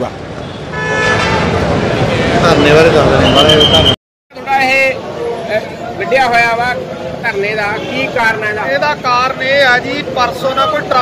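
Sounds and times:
background traffic noise: 0:00.0 - 0:11.0
vehicle horn long note: 0:00.7 - 0:01.5.

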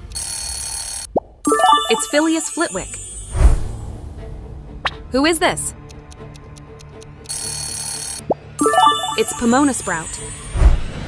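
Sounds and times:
alarm bell ringing: 0:01.5 - 0:03.4, 0:08.6 - 0:10.4
short rising chime: 0:01.5 - 0:03.4, 0:08.6 - 0:10.3
background music: 0:01.5 - 0:10.6.

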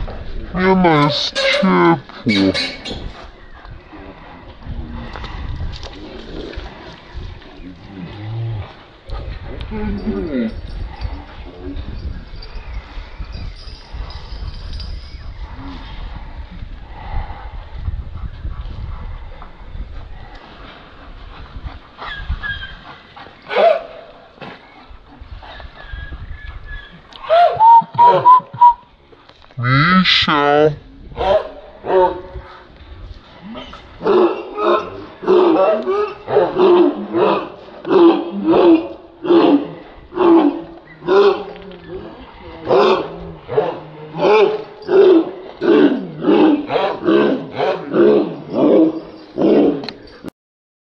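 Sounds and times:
dogs barking: 0:23.5 - 0:24.1, 0:31.2 - 0:32.3, 0:34.0 - 0:39.6, 0:40.3 - 0:41.6, 0:42.7 - 0:45.4, 0:46.3 - 0:49.8.

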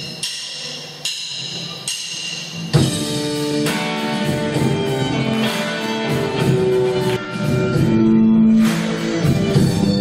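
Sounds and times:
live band with guitar: 0:02.7 - 0:10.0.

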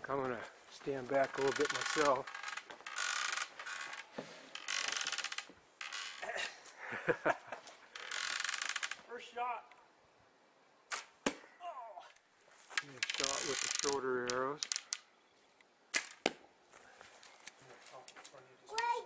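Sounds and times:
bow string snapping: 0:10.9 - 0:11.4.

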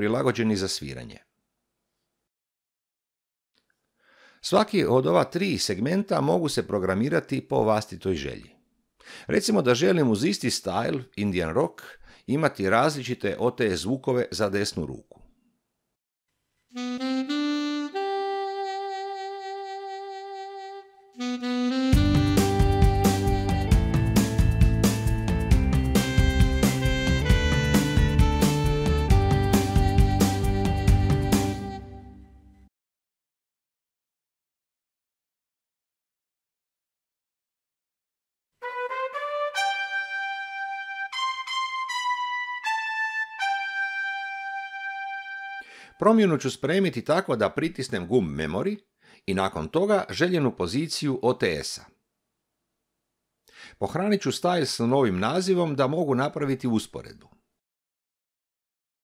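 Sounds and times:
keyboard saxophone notes: 0:16.7 - 0:24.6, 0:25.7 - 0:32.7, 0:38.6 - 0:45.7.

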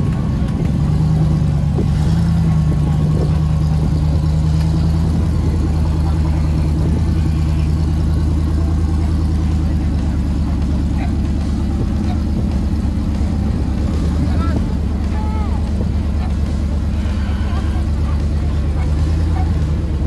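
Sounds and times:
buggy engine running: 0:00.0 - 0:20.0
crowd voices: 0:00.0 - 0:20.0.

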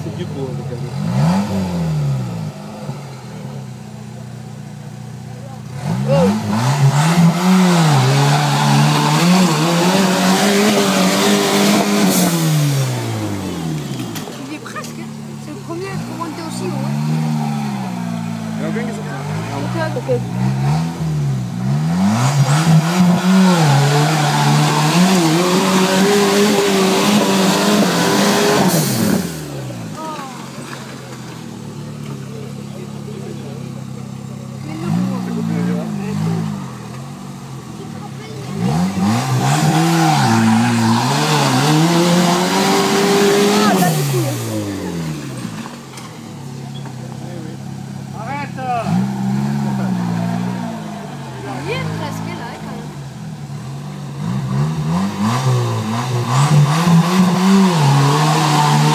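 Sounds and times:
off-road vehicle engine revving: 0:00.0 - 0:58.9.

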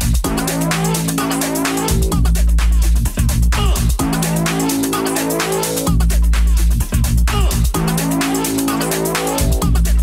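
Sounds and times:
high percussion: 0:00.0 - 0:10.0
house dj mix: 0:00.0 - 0:10.0
sustained synth chords: 0:00.0 - 0:10.0.

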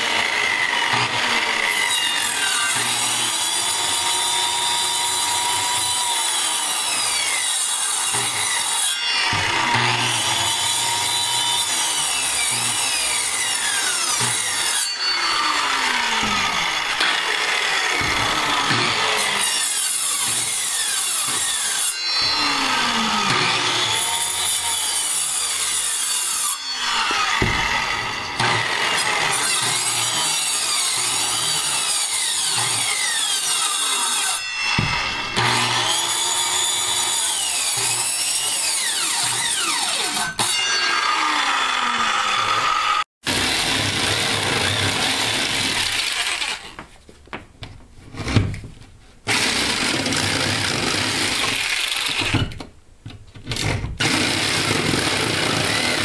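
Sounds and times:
circular saw cutting wood: 0:00.0 - 0:46.8, 0:49.3 - 0:52.4, 0:54.0 - 0:56.0.

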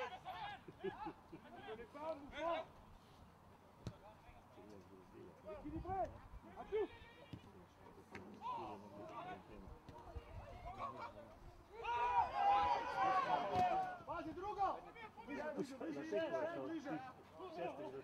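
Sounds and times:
footballers shouting: 0:10.6 - 0:15.8.

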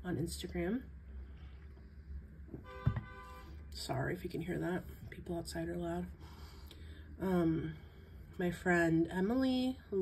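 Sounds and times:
low steady hum: 0:00.0 - 0:10.0
thump: 0:02.8 - 0:03.1.

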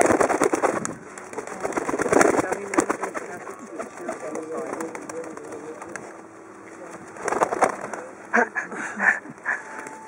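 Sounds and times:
dove wings flapping: 0:00.0 - 0:06.2, 0:07.0 - 0:08.1.

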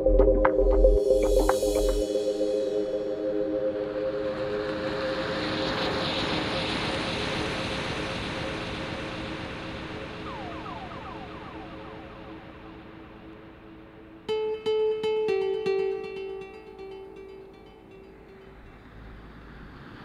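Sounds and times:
held synth chord: 0:00.0 - 0:06.7, 0:10.0 - 0:19.1
wash of noise: 0:01.2 - 0:14.3, 0:18.6 - 0:20.0.

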